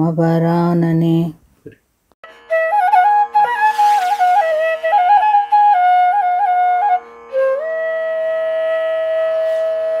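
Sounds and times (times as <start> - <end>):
flute holding long note: 2.3 - 10.0.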